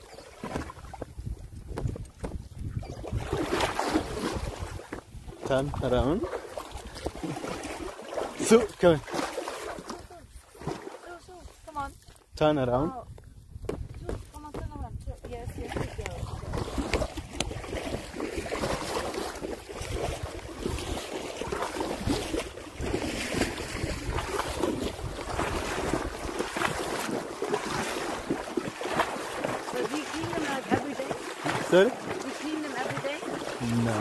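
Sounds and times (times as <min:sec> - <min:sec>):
hooves splashing in water: 0:00.0 - 0:34.0
wind buffeting microphone: 0:00.5 - 0:06.1, 0:11.5 - 0:27.1.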